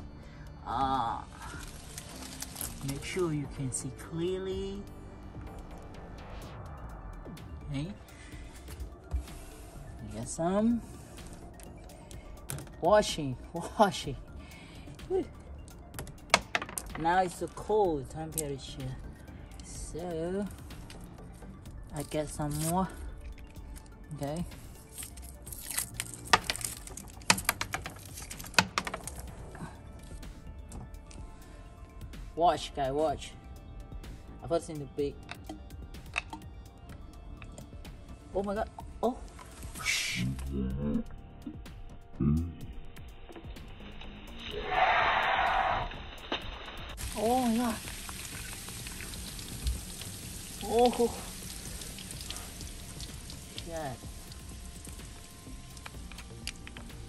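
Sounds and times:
wrapper crinkling and clicking: 0:01.5 - 0:03.1, 0:24.8 - 0:29.3
soda fizzing with fine crackle: 0:45.9 - 0:57.0.

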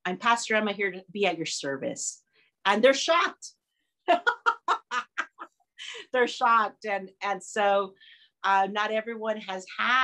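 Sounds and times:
woman laughing heartily: 0:04.1 - 0:06.1.

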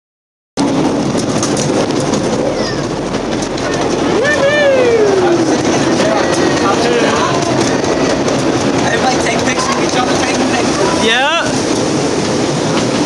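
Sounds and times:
miniature train rumbling on track: 0:00.6 - 0:13.0.

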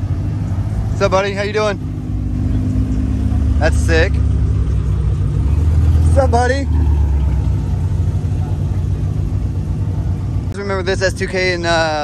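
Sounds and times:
car engine droning at low revs: 0:00.0 - 0:12.0.

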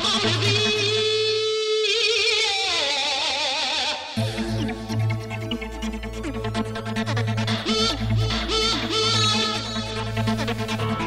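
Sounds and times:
electronic trance music: 0:04.0 - 0:11.0.

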